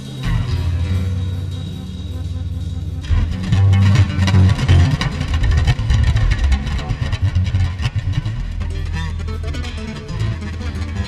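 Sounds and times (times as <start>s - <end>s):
drums striking rapidly: 0.0s - 8.6s
plucked bass: 0.0s - 11.0s.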